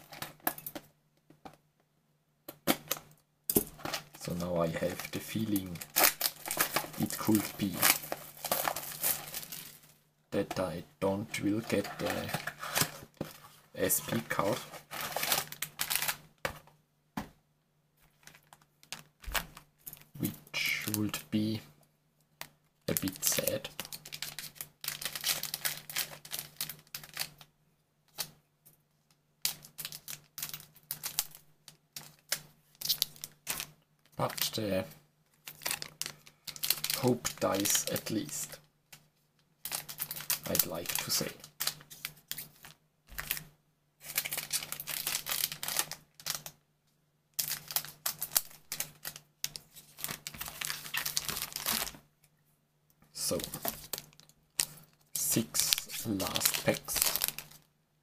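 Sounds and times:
foil wrapper crinkling: 3.8s - 9.9s, 14.2s - 16.2s, 22.9s - 27.5s, 29.4s - 31.4s, 35.4s - 38.6s, 39.6s - 43.4s, 44.0s - 46.6s, 47.4s - 52.0s, 53.2s - 57.7s
trading cards being handled: 4.8s - 10.7s, 11.4s - 13.5s.

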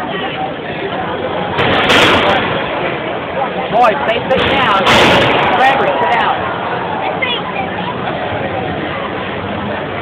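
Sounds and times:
crowd of voices: 0.0s - 10.0s.

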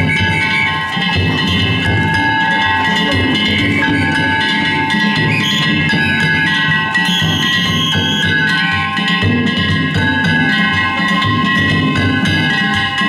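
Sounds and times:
metal gongs clanging: 0.0s - 13.0s
taiko drum rhythm: 0.0s - 13.0s.

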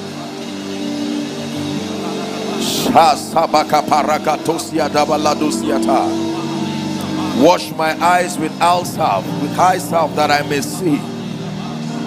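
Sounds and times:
congregation praying aloud: 0.0s - 12.0s
soft worship music chords: 0.0s - 12.0s
person praying rapidly: 2.0s - 11.7s.

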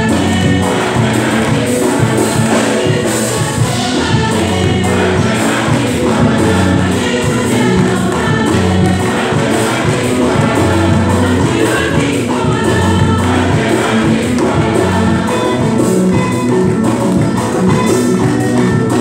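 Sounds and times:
church choir singing a hymn: 0.0s - 19.0s
instrumental accompaniment: 0.0s - 19.0s
steady percussion beat: 0.0s - 19.0s.

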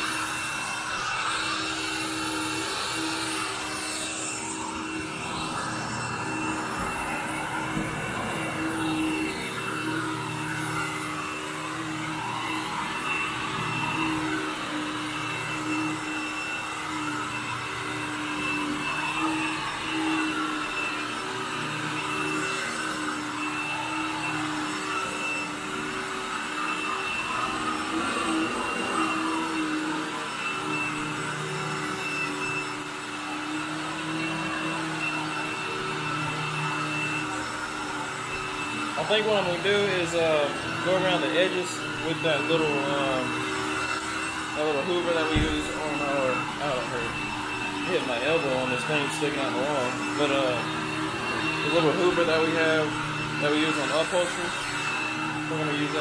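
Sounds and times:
vacuum cleaner on carpet: 0.0s - 56.0s.

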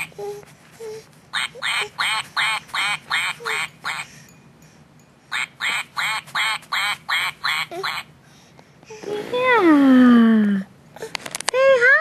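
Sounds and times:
toy duck quacking: 1.4s - 4.1s, 5.3s - 8.1s.

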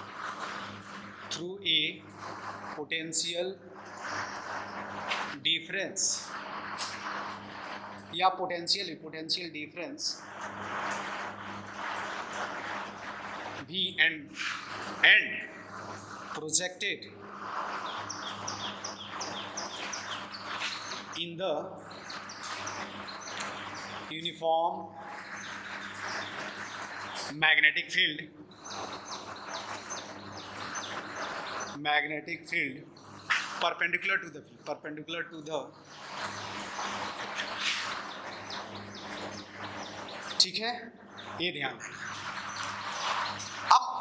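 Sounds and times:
steady low hum: 0.0s - 44.0s
whiteboard marker squeaking: 33.2s - 33.7s, 35.8s - 40.4s, 41.7s - 44.0s.

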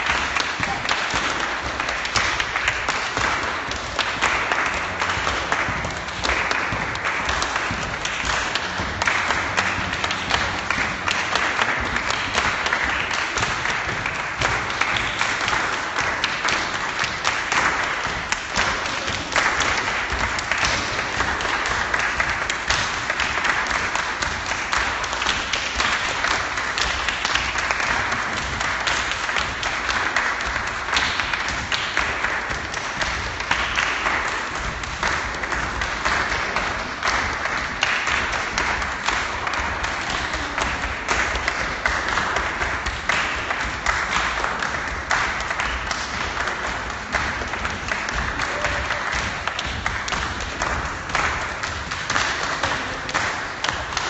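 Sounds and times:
crowd clapping: 0.0s - 54.0s.

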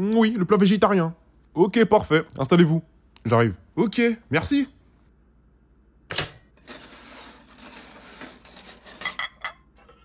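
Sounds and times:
pots and pans clattering: 6.2s - 10.0s.

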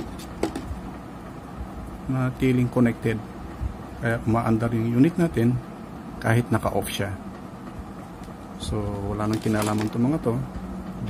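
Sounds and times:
steady low background noise: 0.0s - 11.0s.

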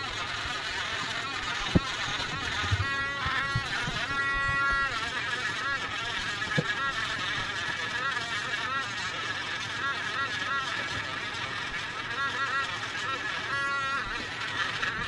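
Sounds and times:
rotary engraver motor whine: 0.0s - 15.0s.

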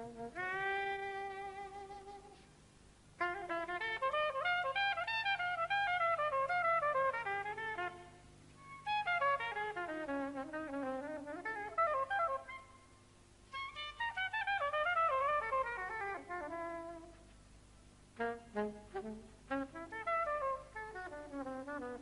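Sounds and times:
soprano saxophone jazz solo: 0.0s - 2.6s, 3.2s - 22.0s.

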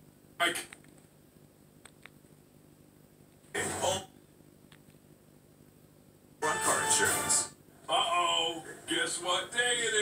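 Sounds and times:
man's voice from tv: 0.4s - 0.8s, 3.5s - 4.2s, 6.4s - 10.0s
music and voice from tv: 3.5s - 4.2s, 6.4s - 10.0s.

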